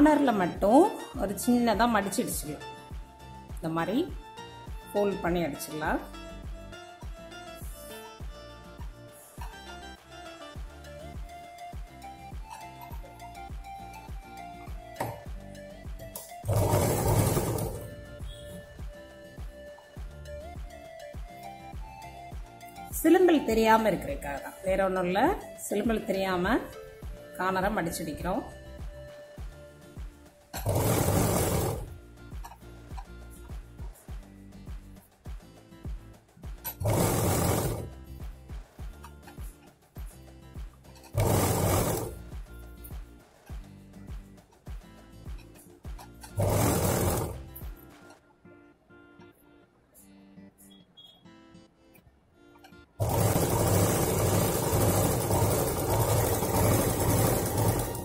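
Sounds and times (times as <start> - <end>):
background music with steady beat: 0.0 - 58.0
sewing machine running: 16.4 - 18.4, 30.6 - 32.0, 36.7 - 37.9, 41.1 - 42.2, 46.3 - 47.5, 53.0 - 58.0.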